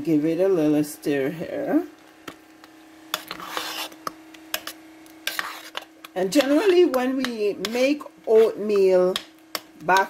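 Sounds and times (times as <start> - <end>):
faint steady hum: 0.0 - 10.0
spoon scraping thick porridge: 3.1 - 8.0.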